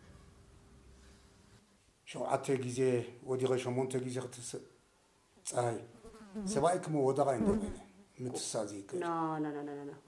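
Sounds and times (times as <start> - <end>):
man speaking: 5.5 - 9.0.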